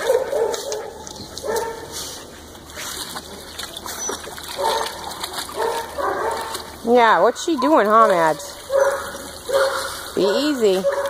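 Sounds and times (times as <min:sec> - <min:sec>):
dogs playing: 0:00.0 - 0:11.0.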